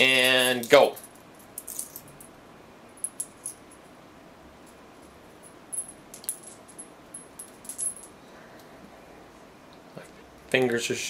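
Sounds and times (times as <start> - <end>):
coins clinking: 0.0 - 2.3, 3.0 - 3.8, 5.4 - 8.2.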